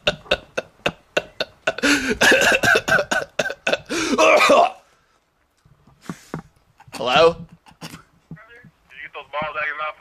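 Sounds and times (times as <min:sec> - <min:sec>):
man laughing: 0:00.0 - 0:04.7, 0:06.8 - 0:08.1
man coughing: 0:01.2 - 0:04.8.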